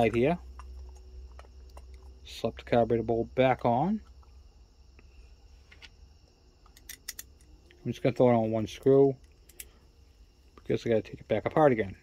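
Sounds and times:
low steady hum: 0:00.0 - 0:12.0
screwdriver and metal parts clicking: 0:06.7 - 0:07.5.

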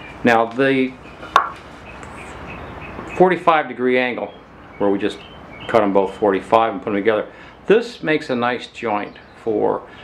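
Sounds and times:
lumber knocking together: 0:01.3 - 0:01.6.

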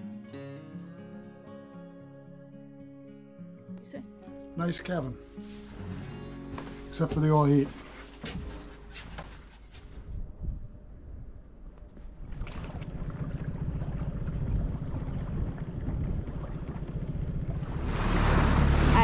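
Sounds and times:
wind on microphone: 0:09.9 - 0:19.0
outboard motor running: 0:12.3 - 0:19.0.

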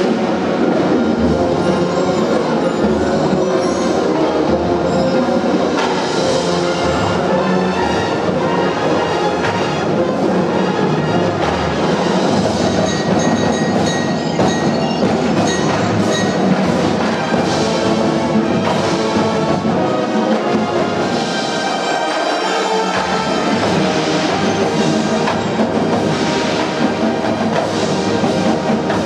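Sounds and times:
brass section chords: 0:00.0 - 0:29.0
marching drums: 0:00.0 - 0:29.0.

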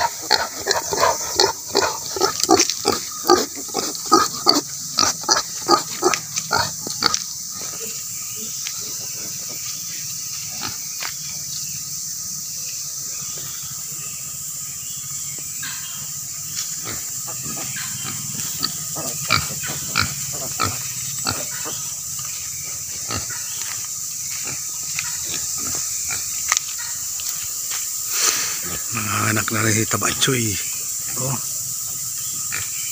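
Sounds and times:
pigs grunting: 0:00.0 - 0:07.8, 0:10.5 - 0:10.9, 0:16.8 - 0:23.6.

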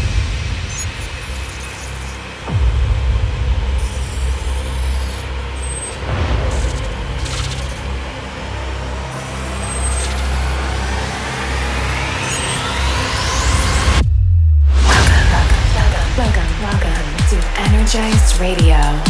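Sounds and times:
cinematic hit: 0:00.0 - 0:10.4, 0:12.9 - 0:18.3
deep bass rumble: 0:00.0 - 0:12.2, 0:12.8 - 0:19.0.

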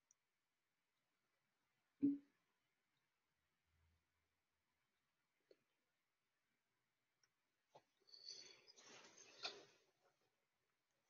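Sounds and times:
faint scratchy noise: 0:07.7 - 0:10.4.

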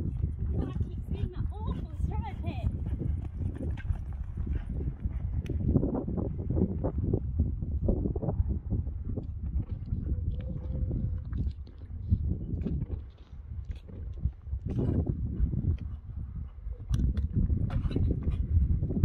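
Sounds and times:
horse hooves thudding on sand: 0:00.0 - 0:07.3, 0:08.0 - 0:19.0.

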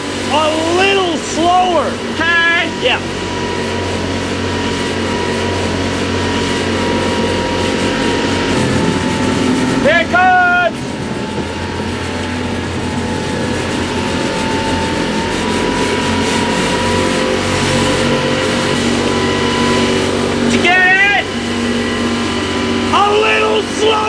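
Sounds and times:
boat diesel engines running: 0:00.0 - 0:24.0
water rushing along hull: 0:00.0 - 0:24.0
person shouting: 0:09.8 - 0:10.8, 0:20.5 - 0:21.3, 0:23.0 - 0:24.0.

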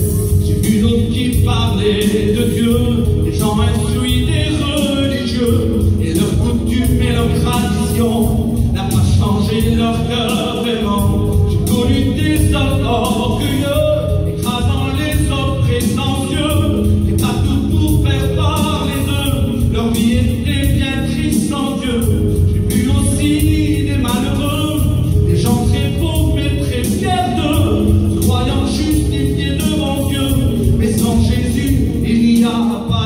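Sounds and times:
man singing a hymn: 0:00.0 - 0:33.0
music over loudspeakers: 0:00.0 - 0:33.0.

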